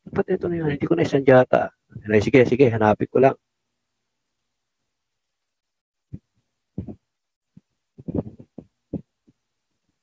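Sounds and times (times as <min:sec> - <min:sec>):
muffled handling thumps: 0:06.1 - 0:07.0, 0:08.0 - 0:09.1.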